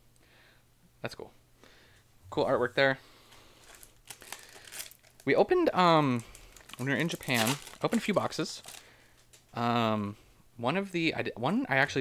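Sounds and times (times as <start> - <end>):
sharp foil crackles: 3.6 - 5.3, 6.2 - 9.5
foil wrapper crinkling: 3.6 - 5.4, 6.1 - 9.5.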